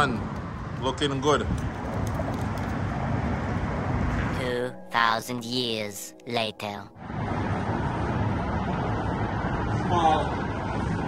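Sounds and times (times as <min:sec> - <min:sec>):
low rumbling outdoor background: 0:00.0 - 0:11.0.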